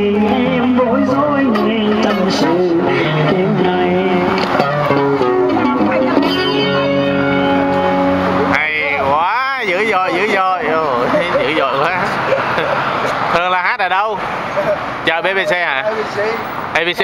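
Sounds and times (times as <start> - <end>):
person singing: 0.0 - 6.1
amplified acoustic guitar: 0.0 - 13.3.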